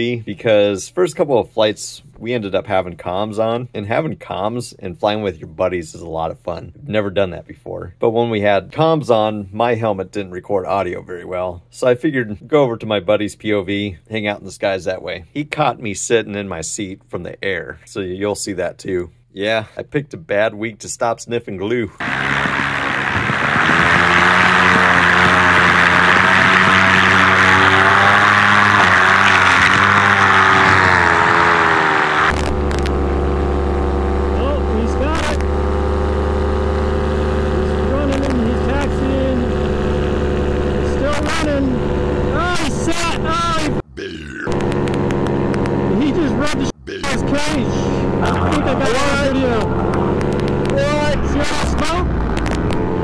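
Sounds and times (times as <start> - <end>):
paramotor engine running: 22.0 - 43.8, 44.5 - 53.0.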